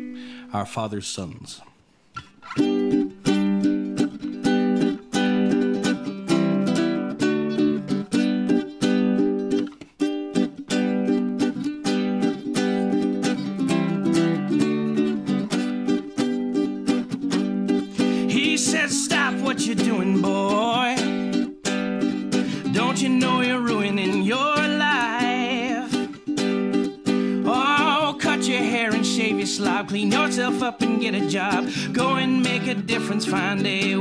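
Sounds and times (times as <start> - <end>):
ukulele strumming: 2.2 - 34.0.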